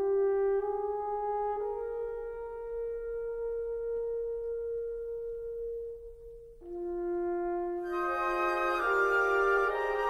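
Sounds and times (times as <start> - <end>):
french horn holding a long note: 0.0 - 10.0.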